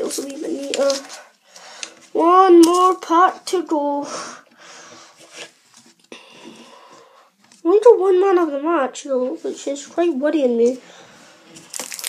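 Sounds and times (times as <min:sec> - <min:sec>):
cards rustling and sliding: 0:00.0 - 0:03.0.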